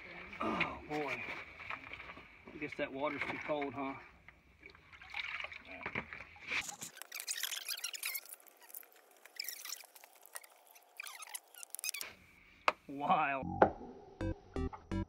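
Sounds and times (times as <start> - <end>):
water splashing and trickling: 0.0 - 12.4.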